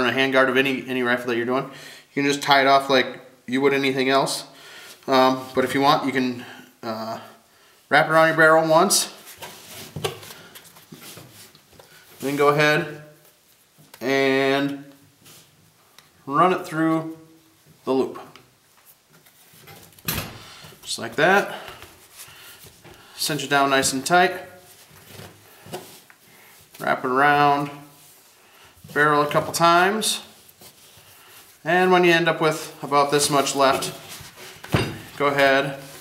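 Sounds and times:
cord rustling: 17.1 - 36.0.

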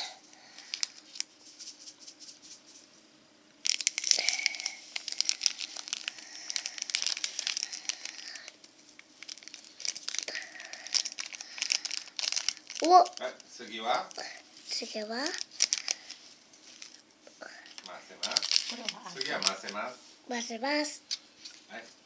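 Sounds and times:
plastic packet crinkling: 0.0 - 2.2, 3.6 - 17.0, 17.7 - 19.9.

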